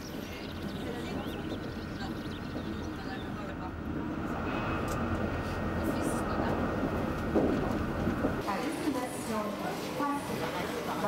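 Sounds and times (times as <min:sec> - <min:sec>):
moving train rumble: 0:00.0 - 0:11.0.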